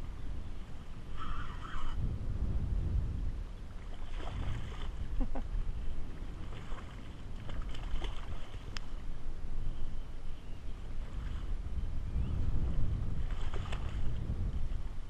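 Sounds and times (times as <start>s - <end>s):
wind buffeting microphone: 0.0s - 15.0s
water washing around kayak: 3.4s - 9.2s.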